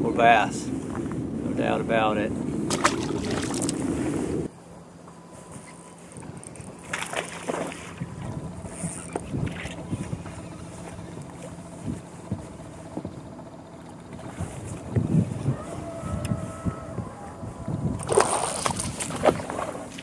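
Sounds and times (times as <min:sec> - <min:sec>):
wind buffeting microphone: 0:00.0 - 0:04.5, 0:05.4 - 0:20.0
waves slapping boat hull: 0:02.5 - 0:04.5, 0:06.2 - 0:13.2, 0:17.8 - 0:20.0.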